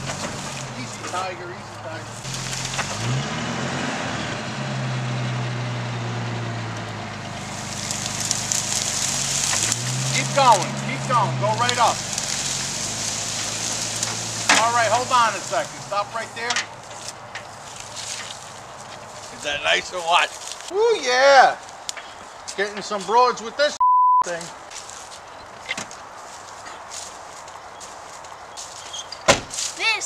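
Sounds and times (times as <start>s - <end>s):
steady outdoor hiss: 0.0s - 2.8s, 7.3s - 30.0s
low engine hum: 0.0s - 19.6s
tyres crunching dry grass and leaves: 0.0s - 23.7s, 24.3s - 30.0s.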